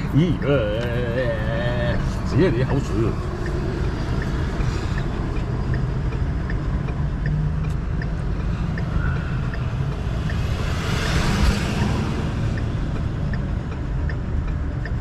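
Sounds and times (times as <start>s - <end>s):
turn signal ticking: 0.0s - 15.0s.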